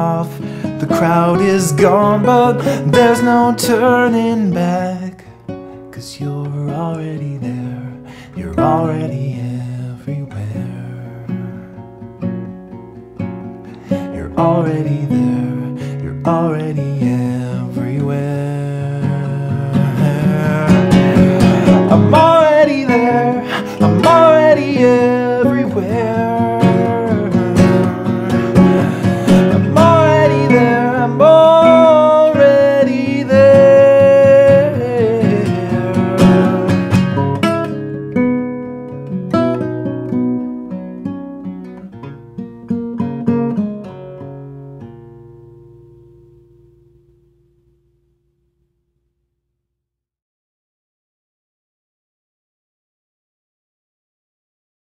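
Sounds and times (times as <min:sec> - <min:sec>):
man singing: 0:00.0 - 0:11.8, 0:13.9 - 0:37.6
classical guitar strummed and picked: 0:00.0 - 0:49.1.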